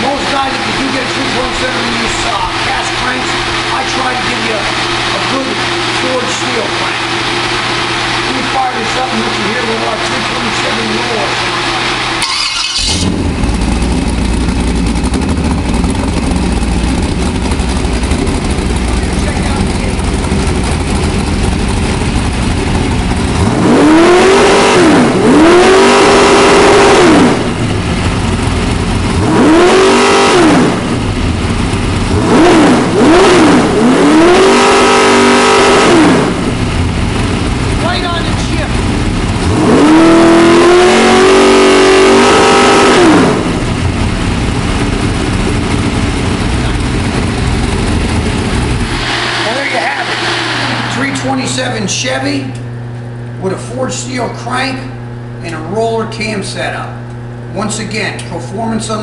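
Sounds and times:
engine revving: 0.0s - 56.0s
engine idling: 0.0s - 59.0s.

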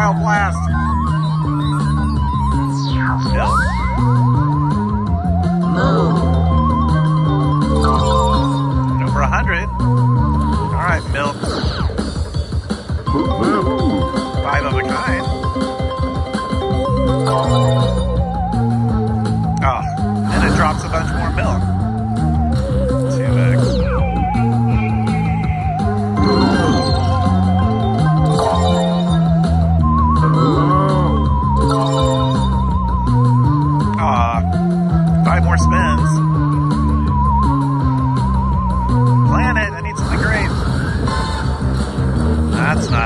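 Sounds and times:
slot machine bonus music: 0.0s - 43.0s
warbling sweep effects: 0.7s - 4.3s.

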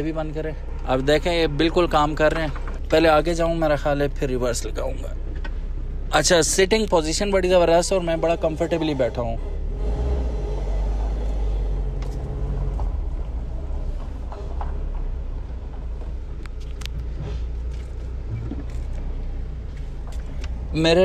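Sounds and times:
diesel engine rumbling: 0.0s - 21.0s.

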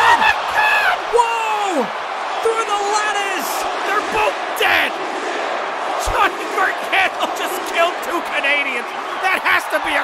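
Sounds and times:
man shouting excited exclamations: 0.0s - 5.0s.

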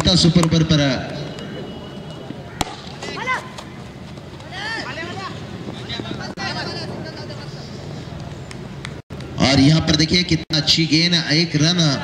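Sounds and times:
outdoor background noise: 0.0s - 12.0s
cricket bat hitting ball: 2.6s - 3.1s.

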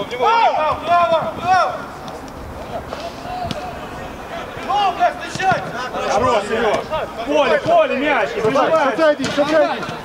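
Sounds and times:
distant shouts from players: 0.0s - 2.0s, 2.6s - 10.0s.

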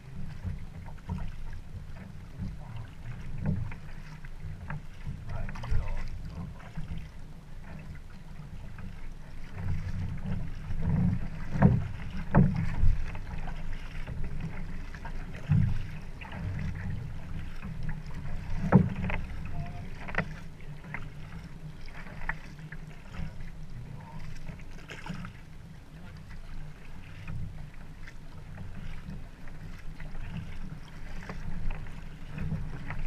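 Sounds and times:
water slapping against canoe hull: 0.0s - 33.0s
wind rumble on microphone: 0.0s - 33.0s.

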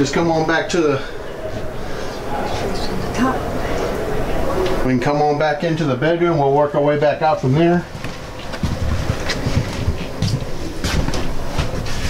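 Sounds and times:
steady rumbling noise: 0.0s - 12.0s.

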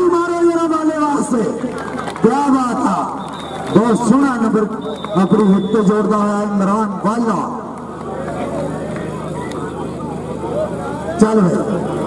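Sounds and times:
murmur of crowd voices: 0.0s - 12.0s.

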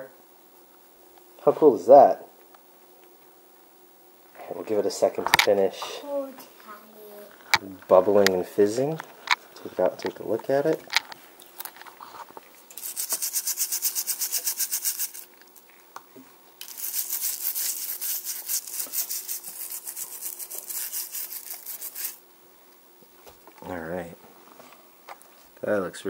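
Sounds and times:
brush scrubbing toy car: 12.8s - 15.3s, 16.6s - 22.2s.

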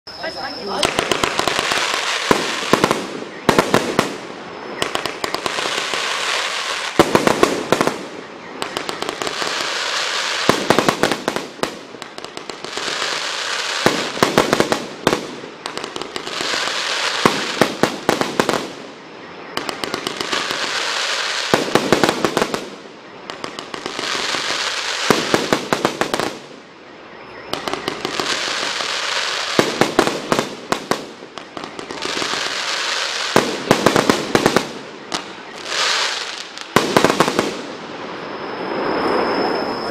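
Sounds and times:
fireworks noisy rush: 0.2s - 39.9s
fireworks crackling pops: 0.6s - 26.6s, 27.5s - 39.9s.

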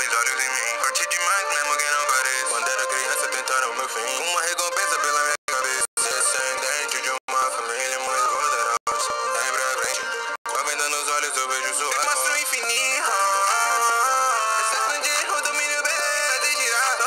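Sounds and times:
rapping and singing over a beat: 0.0s - 17.0s.

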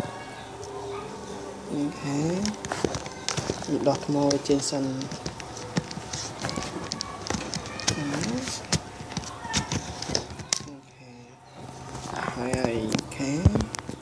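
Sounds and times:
clicks and knocks of handling: 2.3s - 10.8s, 11.6s - 14.0s.

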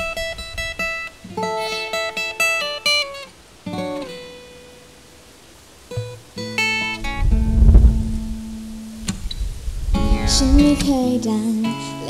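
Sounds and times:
acoustic guitar strum: 0.0s - 4.8s, 5.9s - 12.0s
low rumble: 7.0s - 10.9s.

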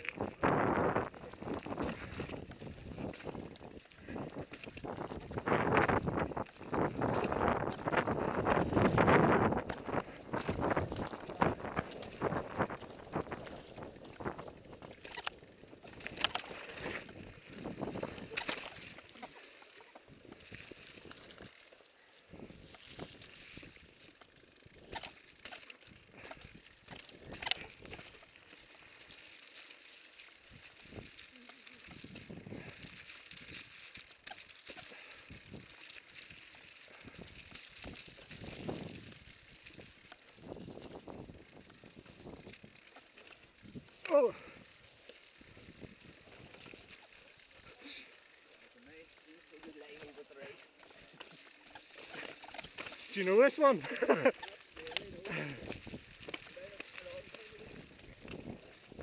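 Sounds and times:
bike tyre rumble on dirt: 0.0s - 59.0s
rider exclaiming: 44.0s - 44.7s.

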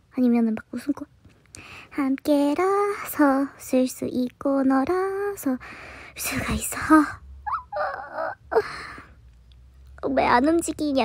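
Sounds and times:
breathy exhale: 5.6s - 6.2s
woman groaning: 7.5s - 8.8s.

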